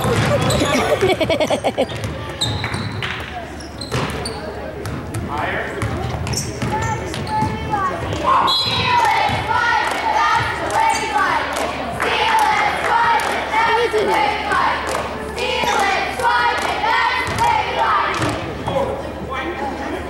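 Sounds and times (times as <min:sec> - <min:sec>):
people talking and shouting: 0:00.0 - 0:20.0
basketball dribbling on wooden floor: 0:04.8 - 0:07.6.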